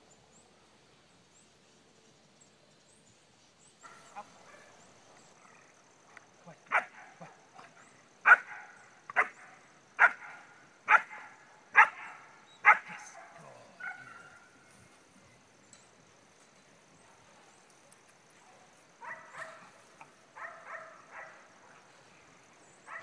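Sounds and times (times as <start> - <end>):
dog barking: 6.7 - 7.4, 8.2 - 14.5, 18.5 - 19.7, 20.4 - 21.8.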